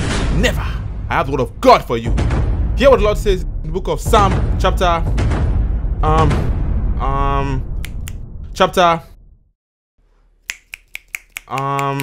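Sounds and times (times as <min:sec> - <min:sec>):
finger snaps: 0:07.8 - 0:08.2, 0:10.4 - 0:12.0.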